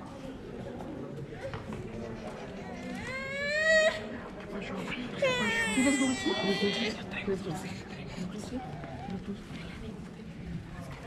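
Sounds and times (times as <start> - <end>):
baby crying: 5.2 - 7.0.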